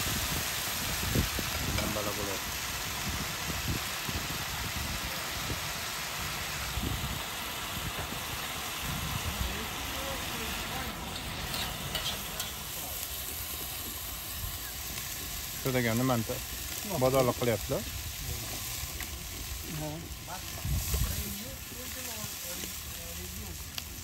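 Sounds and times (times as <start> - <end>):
food sizzling in a pot: 0.0 - 24.0.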